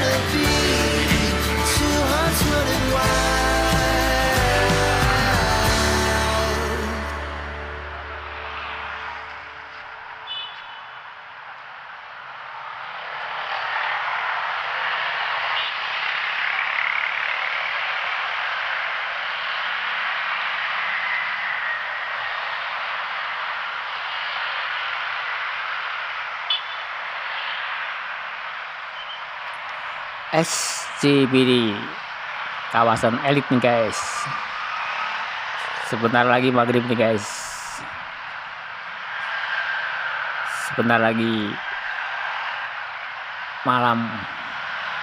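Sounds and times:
passing cars and motorcycles: 0:12.6 - 0:28.1.

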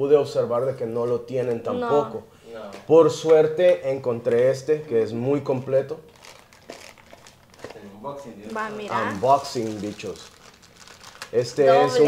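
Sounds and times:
plastic packaging crinkling: 0:06.1 - 0:12.0.

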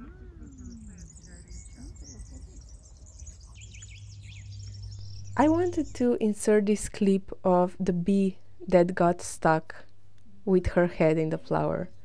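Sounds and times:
small birds chirping: 0:00.0 - 0:07.0
low steady rumble: 0:03.5 - 0:09.2.

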